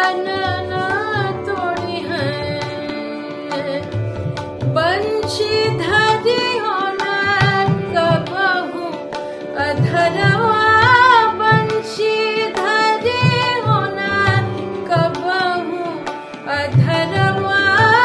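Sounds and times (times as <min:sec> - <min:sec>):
woman singing: 0:00.0 - 0:18.0
tabla strokes: 0:00.2 - 0:18.0.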